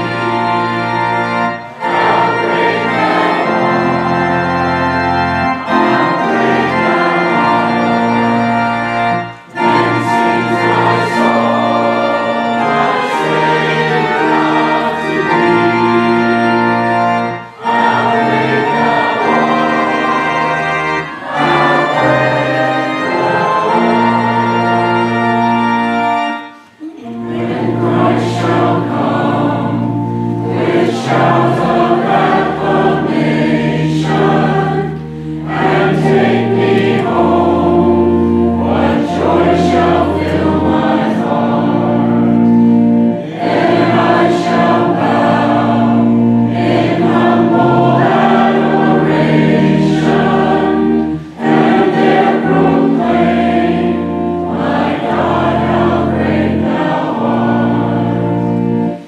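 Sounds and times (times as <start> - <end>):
church choir singing a hymn: 0.0 - 59.0
organ accompaniment: 0.0 - 59.0
singers breathing: 35.0 - 35.4, 51.0 - 51.4.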